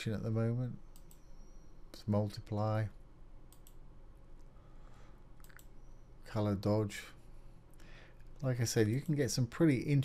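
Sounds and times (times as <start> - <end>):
computer mouse click: 0.9 - 1.7, 3.5 - 3.8, 5.4 - 5.8.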